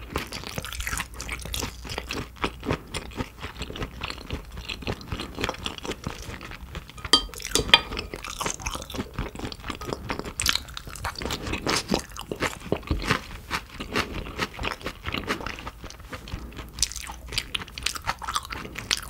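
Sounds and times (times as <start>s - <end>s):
wet chewing: 0.1s - 19.0s.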